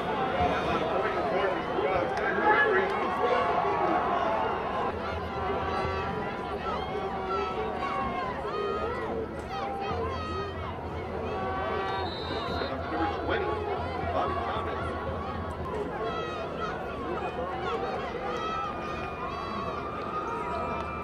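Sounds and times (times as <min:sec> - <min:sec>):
crowd shouting and talking: 0:00.0 - 0:21.0.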